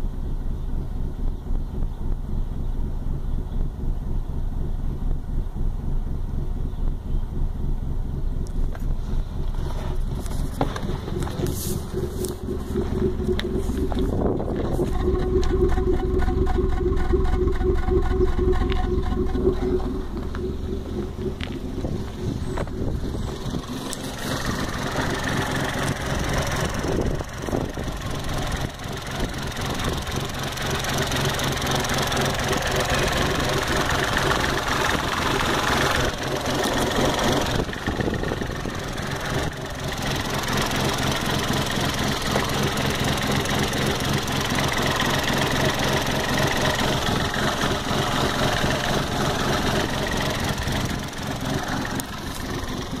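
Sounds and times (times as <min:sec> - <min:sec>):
car engine idling: 0:00.0 - 0:53.0.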